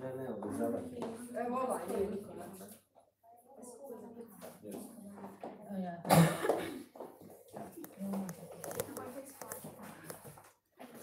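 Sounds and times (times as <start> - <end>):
group of people talking: 0.0 - 11.0
loud cough: 6.1 - 6.9.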